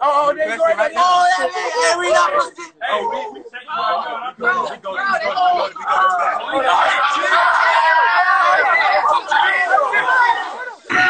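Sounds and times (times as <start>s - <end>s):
young people shouting and talking: 0.0s - 11.0s.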